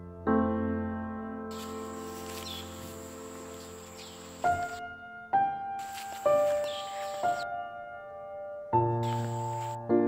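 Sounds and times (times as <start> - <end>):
high-pitched insect buzz: 1.5 - 4.8, 5.8 - 7.4, 9.0 - 9.8
faint chirp: 5.8 - 7.4.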